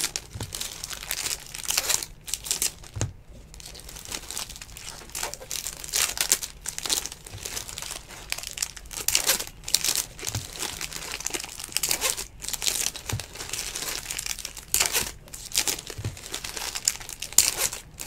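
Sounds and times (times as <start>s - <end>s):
foil wrappers crinkling: 0.0s - 18.0s.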